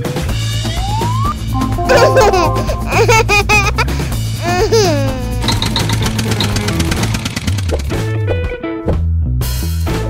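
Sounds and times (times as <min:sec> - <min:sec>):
background music: 0:00.0 - 0:05.0
light high plinking notes: 0:01.6 - 0:03.2
child laughter sound effect: 0:01.8 - 0:05.6.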